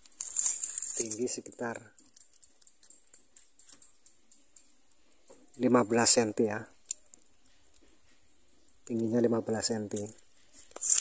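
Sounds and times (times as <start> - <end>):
tape measure small clicks: 0.0 - 4.7, 9.9 - 11.0.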